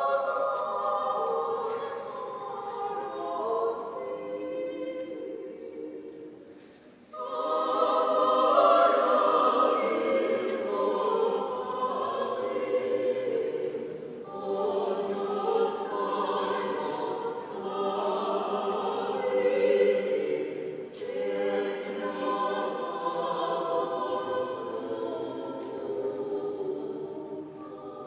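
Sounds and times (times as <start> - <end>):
a cappella vocal ensemble singing: 0.0 - 28.0.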